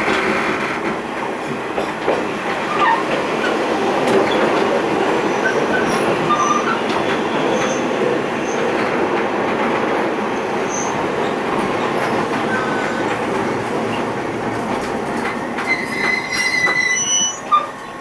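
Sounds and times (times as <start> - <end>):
train wheels on rail: 0.0 - 18.0.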